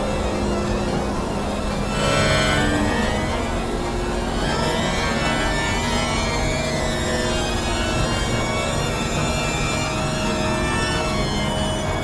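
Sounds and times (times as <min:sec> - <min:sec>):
synthesizer drones: 0:00.0 - 0:12.0.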